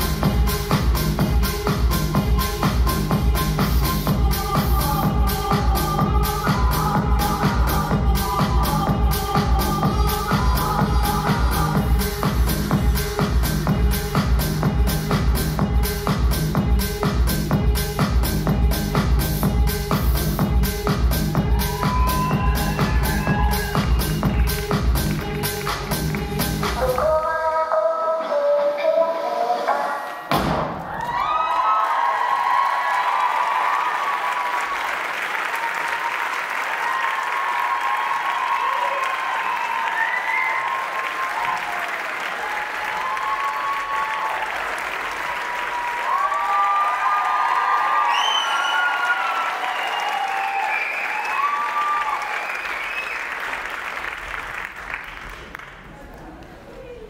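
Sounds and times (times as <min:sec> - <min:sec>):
audience cheering and whooping: 0:21.3 - 0:25.0, 0:30.7 - 0:54.3
audience applauding: 0:21.5 - 0:26.3, 0:30.8 - 0:56.7.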